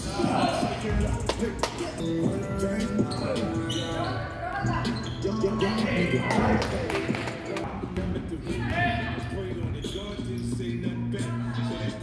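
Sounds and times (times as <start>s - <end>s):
background music: 0.0s - 12.0s
voices: 0.0s - 12.0s.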